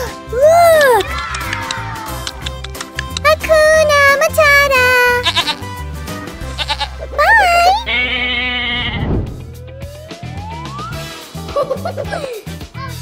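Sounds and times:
upbeat background music: 0:00.0 - 0:08.6, 0:09.2 - 0:13.0
farm animals bleating: 0:05.1 - 0:05.7, 0:06.4 - 0:09.1
rising whistle-like glide: 0:09.7 - 0:11.1.

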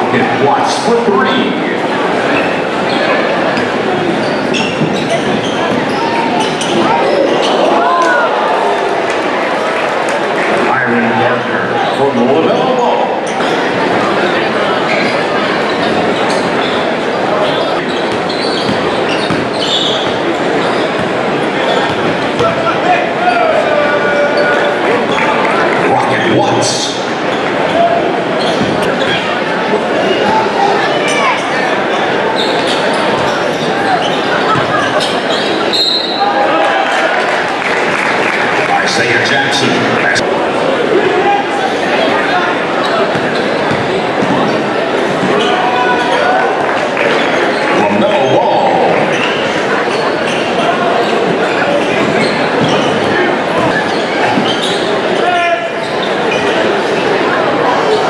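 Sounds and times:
crowd chatter: 0:00.0 - 0:58.0.

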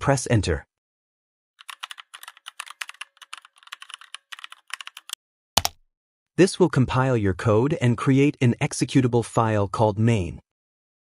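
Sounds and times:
typing on a computer keyboard: 0:01.6 - 0:05.8.

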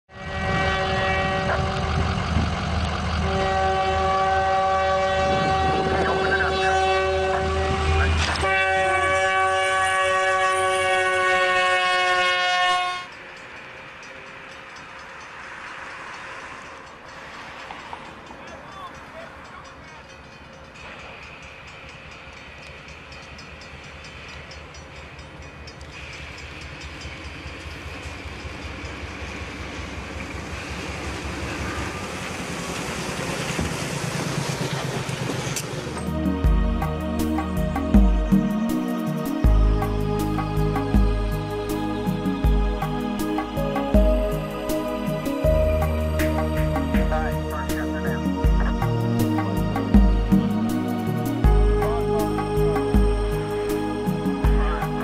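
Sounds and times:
locomotive air horn: 0:00.1 - 0:02.3, 0:03.1 - 0:13.2
train rumbling: 0:00.1 - 0:55.0.

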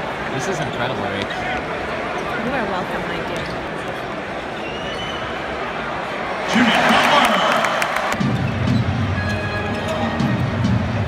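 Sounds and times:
arena crowd noise: 0:00.0 - 0:11.0
music: 0:08.2 - 0:11.0.

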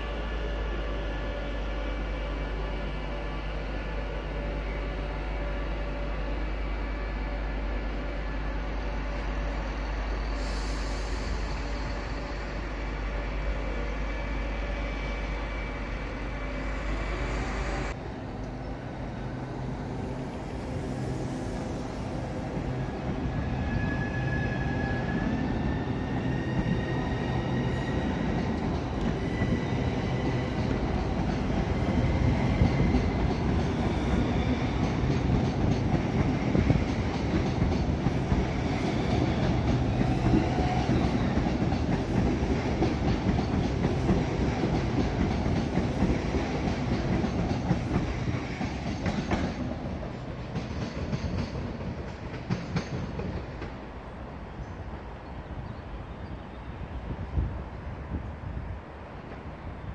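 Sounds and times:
wheels rumbling on rail: 0:00.0 - 0:59.9.

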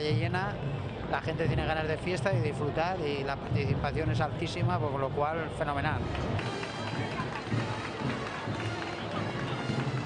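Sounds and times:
crowd chatter: 0:00.0 - 0:10.0
parade band music: 0:00.0 - 0:10.0.

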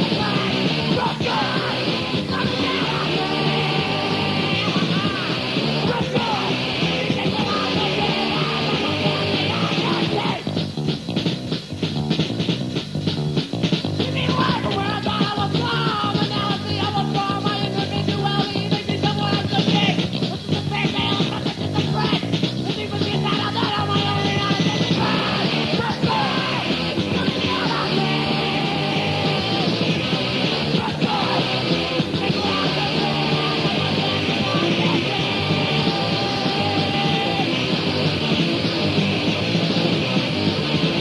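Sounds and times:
punk band playing loud: 0:00.0 - 0:41.0
yelled vocals: 0:00.0 - 0:41.0.

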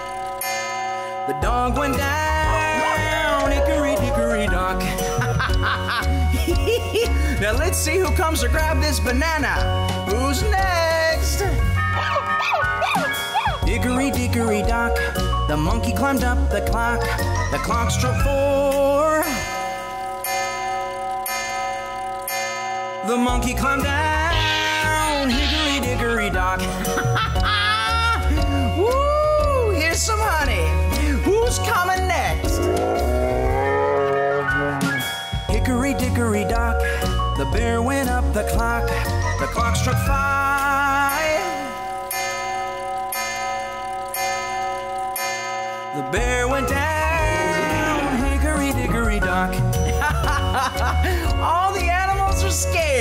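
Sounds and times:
clock chime bell strokes: 0:00.0 - 0:04.6, 0:19.2 - 0:23.3, 0:34.9 - 0:35.6, 0:41.1 - 0:48.7
grandfather clock chiming: 0:00.0 - 0:11.8, 0:13.2 - 0:34.1, 0:34.9 - 0:53.0.

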